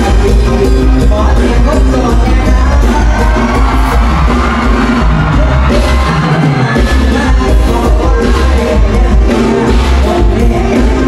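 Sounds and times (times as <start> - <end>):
live band music with heavy bass: 0.0 - 11.0.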